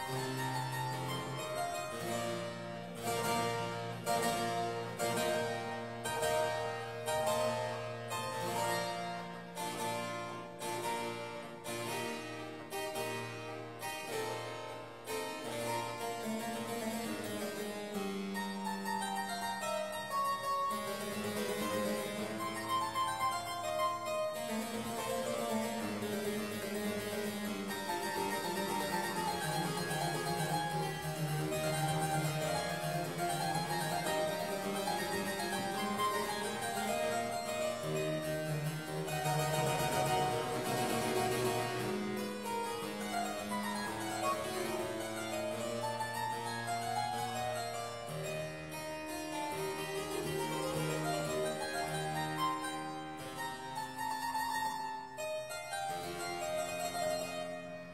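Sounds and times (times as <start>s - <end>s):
harpsichord playing baroque music: 0.0s - 57.9s.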